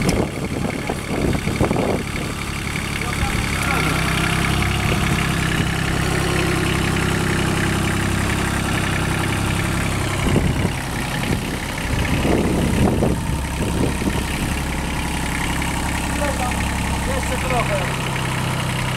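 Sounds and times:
tractor diesel engine idling: 0:00.0 - 0:18.9.

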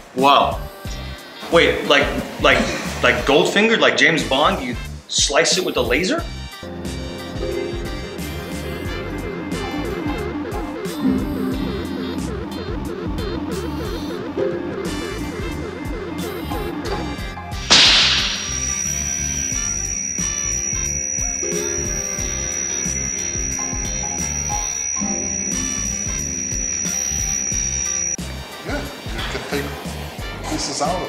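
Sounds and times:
film score music: 0:06.3 - 0:30.8
laser beam burst and whine: 0:17.7 - 0:28.2.

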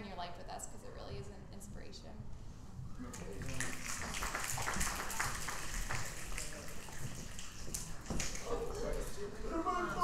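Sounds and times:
congregation applauding: 0:03.4 - 0:08.5.

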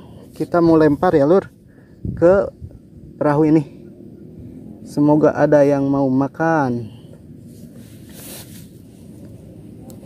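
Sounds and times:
soft rustle: 0:07.4 - 0:10.0.

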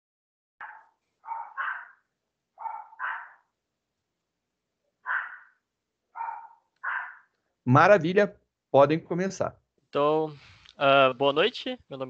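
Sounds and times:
dog barking: 0:00.6 - 0:03.5, 0:05.0 - 0:07.3.

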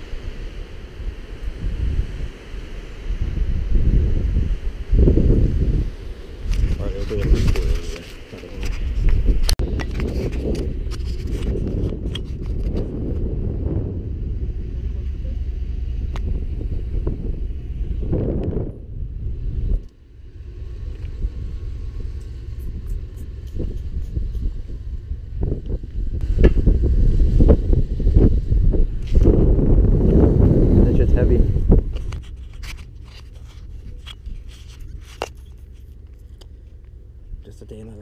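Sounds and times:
wind buffeting microphone: 0:00.0 - 0:38.0.

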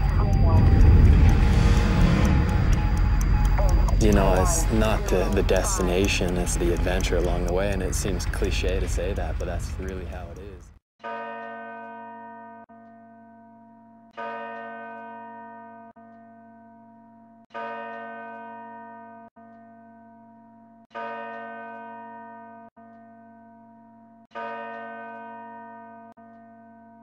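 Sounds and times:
deep bell tolling: 0:00.0 - 0:10.5
low steady drone: 0:00.0 - 0:10.7.

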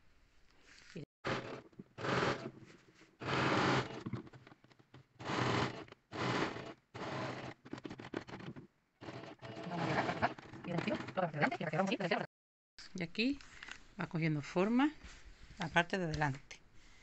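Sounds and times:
sewing machine stitching: 0:01.3 - 0:02.6, 0:03.2 - 0:04.3, 0:05.2 - 0:11.4.

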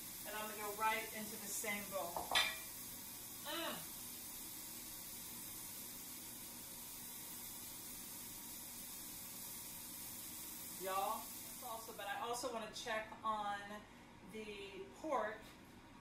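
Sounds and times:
peppers sizzling in a skillet: 0:00.0 - 0:12.5.

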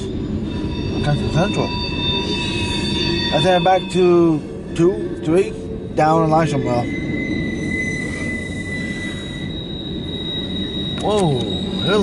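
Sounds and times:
freight train rumbling: 0:00.0 - 0:12.0
train wheels squealing: 0:00.0 - 0:12.0.

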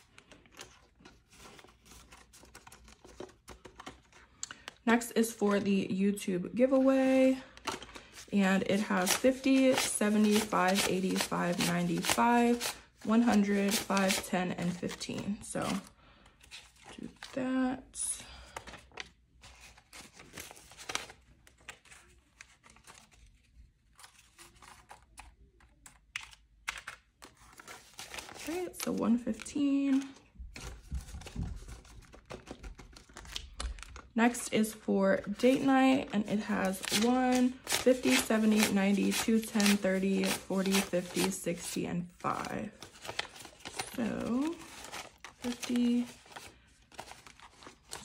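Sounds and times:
paper banknotes rustling: 0:00.0 - 0:05.4, 0:06.6 - 0:48.0
person speaking: 0:08.3 - 0:15.8, 0:34.2 - 0:42.8, 0:43.8 - 0:44.7, 0:45.4 - 0:46.2.

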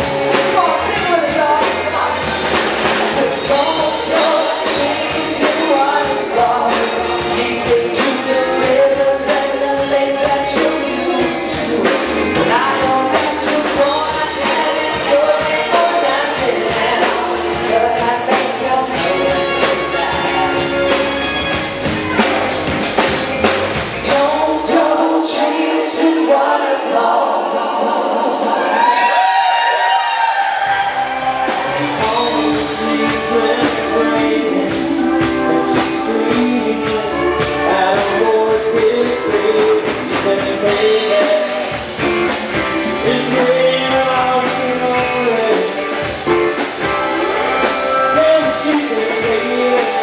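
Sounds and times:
drums: 0:00.0 - 0:26.9, 0:28.5 - 0:50.0
bass: 0:00.0 - 0:27.1, 0:28.5 - 0:50.0
live rock band through pa: 0:00.0 - 0:27.3, 0:28.5 - 0:50.0
singers holding notes in harmony: 0:24.0 - 0:38.8.

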